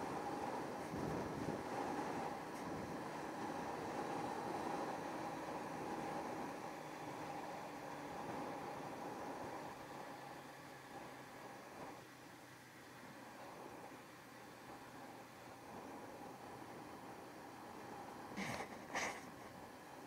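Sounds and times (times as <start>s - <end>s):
wind on microphone: 0.1s - 4.8s.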